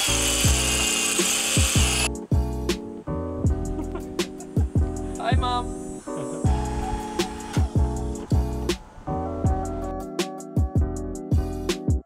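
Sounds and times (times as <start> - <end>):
power drill whining into wall: 0.0 - 2.1
background music with beat: 1.2 - 12.0.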